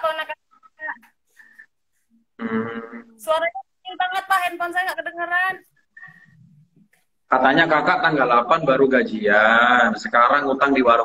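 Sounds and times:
speech over video call: 0.0s - 11.0s.

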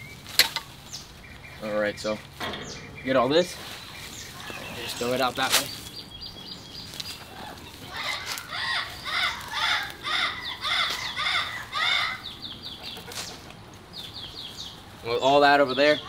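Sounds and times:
bird calling: 0.0s - 16.0s
high bird chirps: 0.0s - 16.0s
weeds being pulled up: 3.2s - 6.0s.

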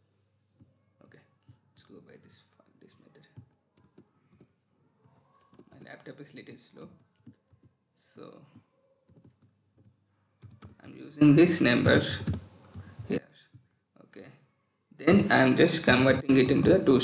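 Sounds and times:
typing on a computer keyboard: 3.1s - 4.5s, 5.3s - 6.0s, 6.7s - 7.8s, 9.1s - 11.0s, 11.8s - 12.9s.

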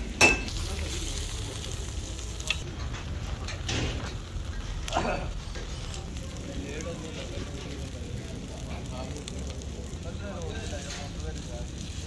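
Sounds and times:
fire crackling: 0.0s - 12.0s
open fire burning: 0.0s - 12.0s.

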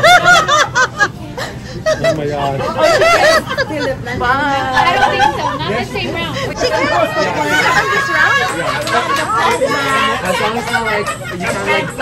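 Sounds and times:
woman laughing: 0.0s - 5.6s.

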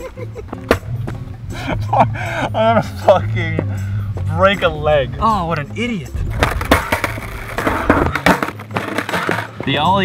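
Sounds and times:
skateboard clattering on asphalt: 6.3s - 10.0s.

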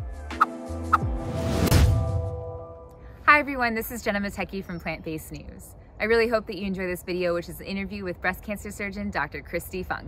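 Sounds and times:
low hit: 1.0s - 2.9s.

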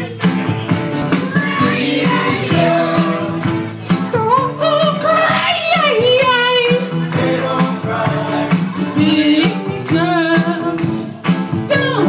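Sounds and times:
backing track drum beat: 0.0s - 12.0s
person singing karaoke: 0.0s - 12.0s.

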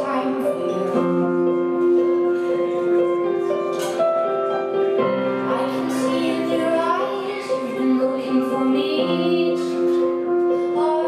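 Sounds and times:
piano chords: 0.0s - 11.0s
woman singing: 5.5s - 11.0s.

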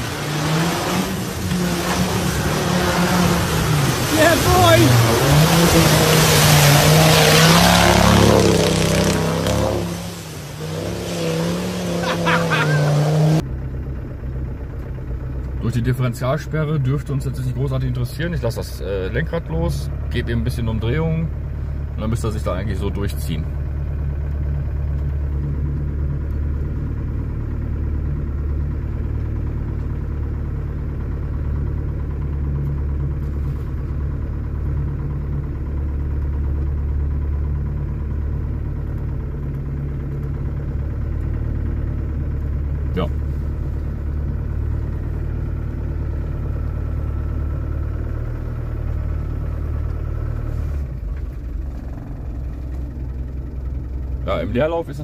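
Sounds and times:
engine running at low revs: 0.0s - 55.0s.

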